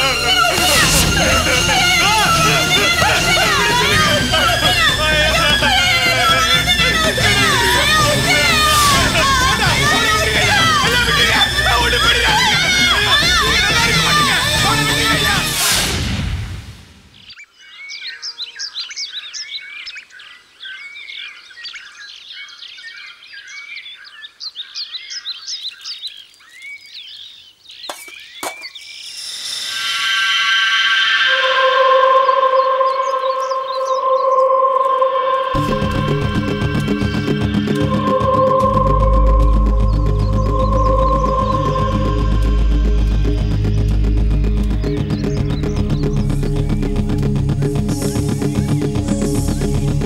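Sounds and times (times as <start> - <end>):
voices shouting: 0.0 - 15.6, 30.4 - 43.6
background music: 0.0 - 17.0, 29.7 - 50.0
faint high chirps: 28.6 - 44.3
electronic drone note: 29.1 - 50.0.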